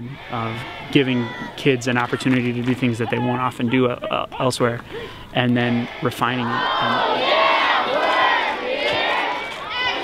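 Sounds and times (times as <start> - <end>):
children shouting and cheering: 0.0 - 4.5, 5.4 - 10.0.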